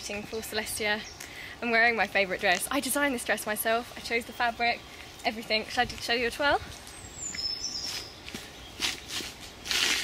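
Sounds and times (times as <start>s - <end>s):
feet scuffing on dirt path: 5.9s - 10.0s.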